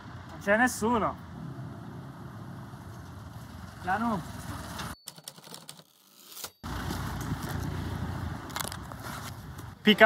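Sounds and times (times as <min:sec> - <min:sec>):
traffic rumble: 0:00.0 - 0:05.0, 0:06.6 - 0:10.0.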